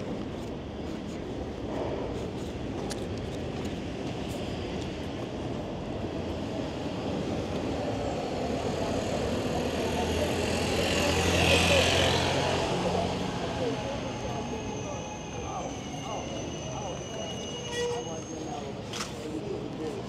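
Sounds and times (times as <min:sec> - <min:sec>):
street and traffic noise: 0:00.0 - 0:20.0.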